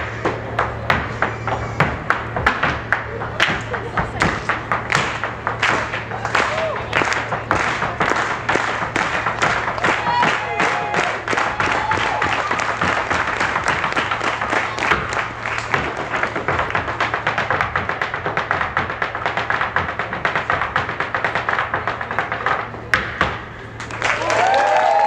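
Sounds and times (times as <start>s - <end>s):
hard shoes tapping on a stage: 0.0s - 25.0s.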